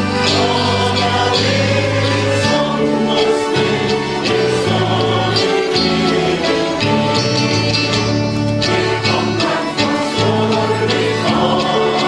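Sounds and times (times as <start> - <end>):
accordion band: 0.0 - 12.0
acoustic guitars: 0.0 - 12.0
voices singing a hymn: 0.0 - 12.0.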